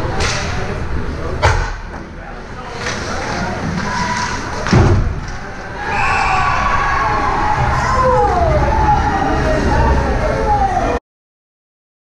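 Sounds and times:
spectators shouting and cheering: 3.3 - 11.0.

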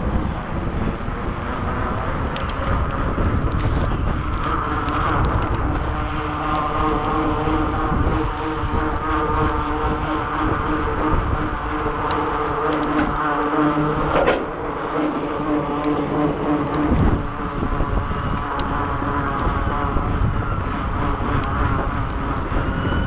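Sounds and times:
bicycle tyres on wet pavement: 0.0 - 23.0
steady hum: 0.0 - 23.0
wind noise: 0.0 - 23.0.

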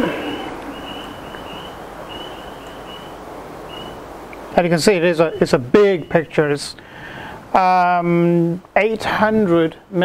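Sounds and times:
faint high-pitched tone: 5.0 - 6.6.

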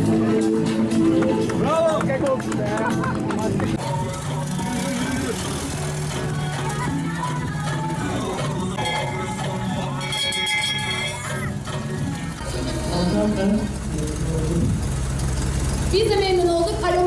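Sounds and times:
music: 0.0 - 14.7
voices: 0.0 - 14.8, 15.9 - 17.0
brass bell clanging: 8.8 - 11.4.

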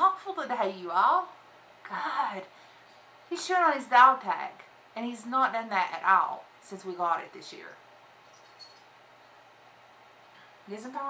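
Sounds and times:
metal dog tag clinking: 8.3 - 8.9.

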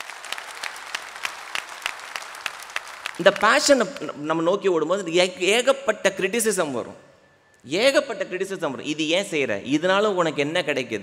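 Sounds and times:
audience applauding: 0.0 - 4.1.

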